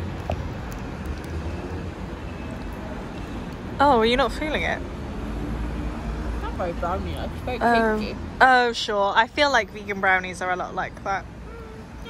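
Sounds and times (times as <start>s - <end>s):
faint city hum: 0.0s - 12.0s
road traffic rumble: 0.0s - 12.0s.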